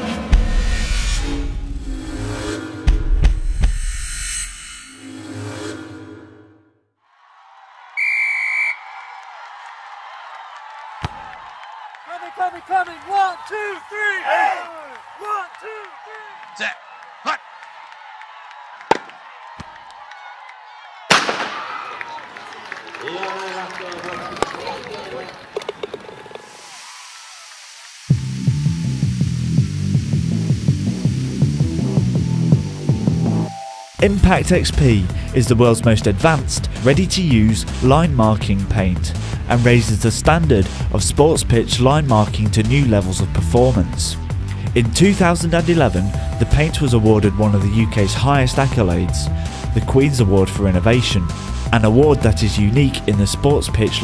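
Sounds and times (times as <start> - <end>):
sports crowd noise: 7.1 - 28.1
referee's whistle blast: 8.0 - 9.0
pulsing bass line music: 28.1 - 54.0.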